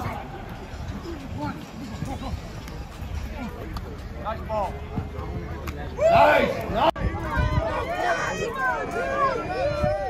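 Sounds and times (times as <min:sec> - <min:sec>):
crowd chatter: 0:00.0 - 0:10.0
people talking: 0:00.0 - 0:10.0.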